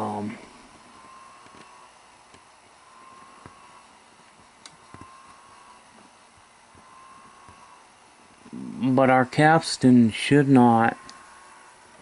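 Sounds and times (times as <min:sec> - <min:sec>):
low mechanical hiss: 0:00.0 - 0:12.0
motor pulsing tone: 0:00.0 - 0:12.0.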